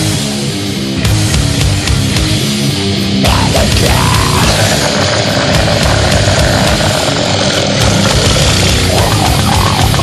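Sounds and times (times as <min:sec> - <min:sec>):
extreme metal music: 0:00.0 - 0:10.0.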